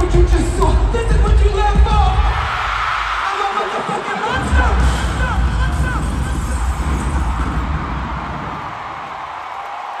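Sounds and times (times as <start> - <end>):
crowd noise in large hall: 0.0 - 10.0.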